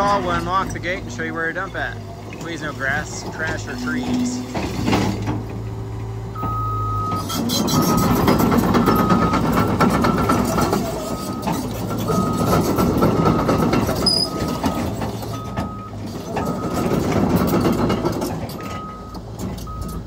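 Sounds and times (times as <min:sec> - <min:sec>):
excavator diesel engine running: 0:00.0 - 0:20.0
warning alarm beeping: 0:06.4 - 0:17.0.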